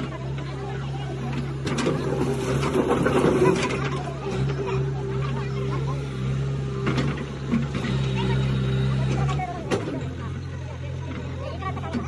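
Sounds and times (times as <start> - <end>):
diesel engine running: 0.0 - 12.0
people talking: 0.0 - 12.0.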